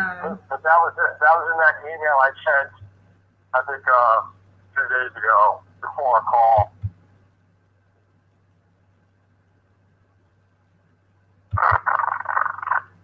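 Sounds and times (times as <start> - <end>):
garbled voice over call line: 0.0 - 2.8, 3.6 - 6.8, 11.6 - 12.9
steady low hum: 0.0 - 13.0.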